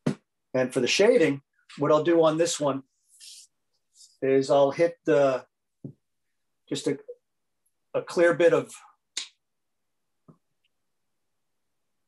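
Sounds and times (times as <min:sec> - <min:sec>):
faint soft tap: 0:05.8 - 0:06.0
short sharp snap: 0:09.2 - 0:09.4.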